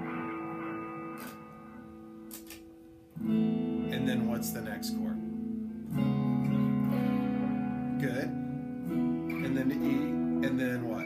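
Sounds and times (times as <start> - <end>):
electric guitar chords strummed: 0.0 - 11.0.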